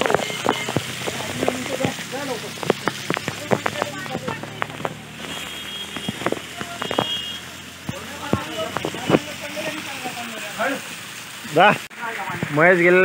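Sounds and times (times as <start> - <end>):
small waterfall splashing onto rocks: 0.0 - 13.0.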